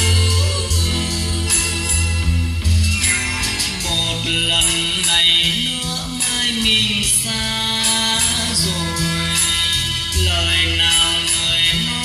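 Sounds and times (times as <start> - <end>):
high percussion strikes: 0.0 - 12.0
song with singing: 0.0 - 12.0.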